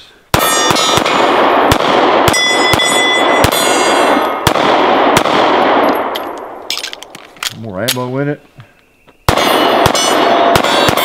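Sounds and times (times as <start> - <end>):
pistol shots: 0.3 - 7.1, 9.3 - 11.0
steel plate ringing clang: 0.4 - 1.1, 2.3 - 4.4, 9.3 - 11.0.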